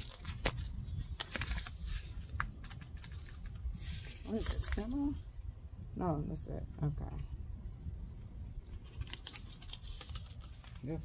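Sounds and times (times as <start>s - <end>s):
paper envelope clicks and rustles: 0.0s - 5.0s, 8.8s - 11.0s
low steady rumble: 0.0s - 11.0s.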